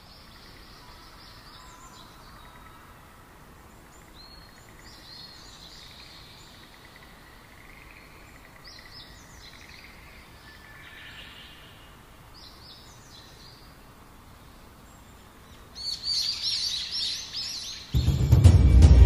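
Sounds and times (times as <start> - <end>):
birds chirping: 0.0 - 18.4.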